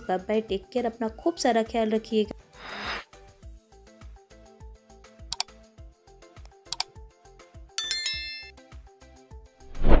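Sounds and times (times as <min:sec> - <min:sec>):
double mouse click: 0:05.3 - 0:05.5
bright bell chime: 0:07.8 - 0:08.5.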